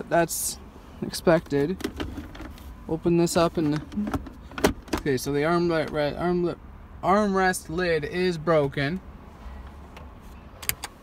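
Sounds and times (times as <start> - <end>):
sharp clicks: 10.6 - 11.0.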